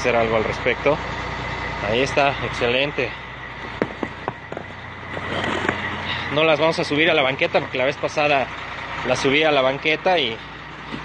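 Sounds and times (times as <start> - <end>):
vehicle engine humming: 0.0 - 11.0
stones knocking and scraping: 3.6 - 6.0.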